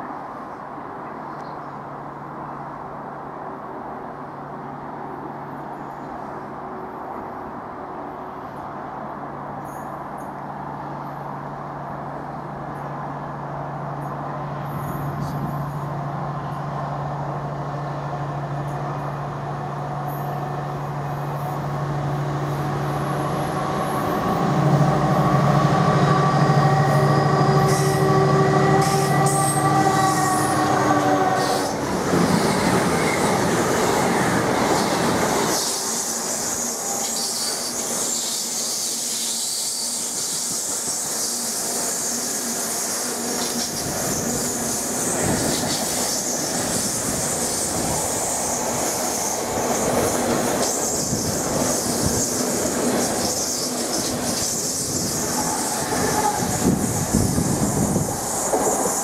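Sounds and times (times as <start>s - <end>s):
diesel locomotive engine: 0.0s - 59.0s
train wheels rumbling and clattering: 13.9s - 59.0s
high wheel squeal: 26.0s - 31.8s, 34.8s - 59.0s.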